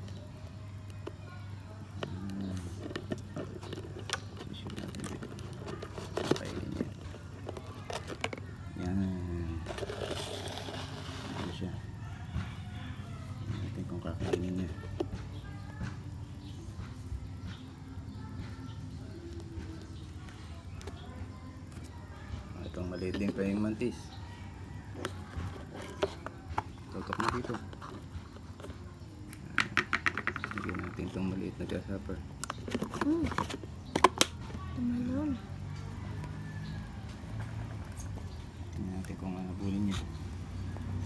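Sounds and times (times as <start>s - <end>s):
faint voices: 0.0s - 41.0s
plastic container clicks and rustle: 2.0s - 8.5s, 25.0s - 28.8s, 29.6s - 31.2s.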